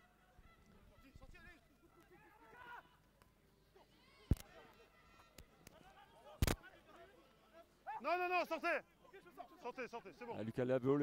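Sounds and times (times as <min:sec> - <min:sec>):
players and spectators shouting: 0:07.6 - 0:10.4.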